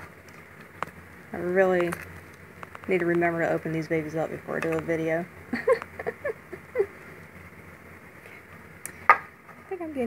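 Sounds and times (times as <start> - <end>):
woman laughing softly: 5.5 - 7.1.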